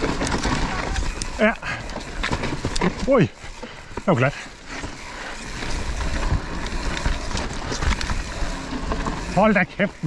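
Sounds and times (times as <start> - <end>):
bike tyre and frame rattle: 0.0 - 10.0
wind noise: 5.4 - 9.4.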